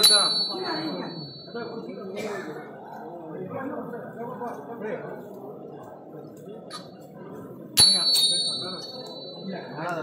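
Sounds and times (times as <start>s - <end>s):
small metal bell ringing: 0.0s - 2.2s, 7.8s - 10.0s
crowd chatter: 0.0s - 10.0s.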